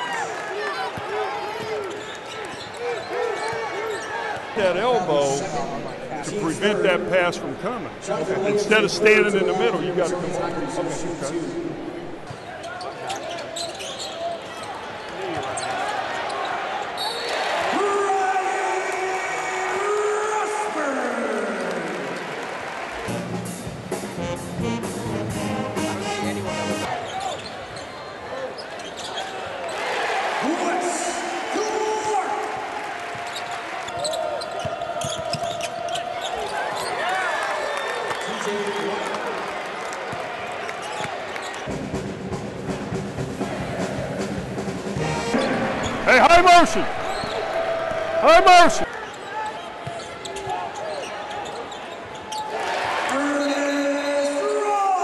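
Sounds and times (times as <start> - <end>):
crowd cheering and shouting: 0.0 - 12.4, 14.3 - 23.1, 29.4 - 41.8, 43.3 - 44.4, 45.0 - 51.7, 52.3 - 55.0
shoes squeaking: 12.2 - 17.3, 27.0 - 29.5, 33.2 - 37.2, 46.9 - 47.6, 48.9 - 52.5
music: 23.1 - 26.9, 41.7 - 46.1.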